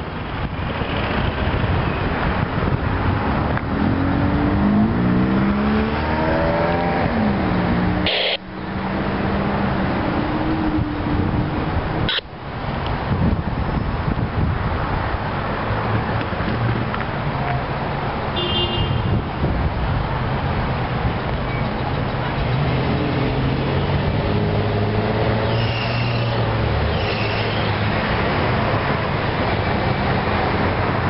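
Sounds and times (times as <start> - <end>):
road traffic noise: 0.0 - 31.0
vehicle accelerating: 0.8 - 12.1, 20.3 - 31.0.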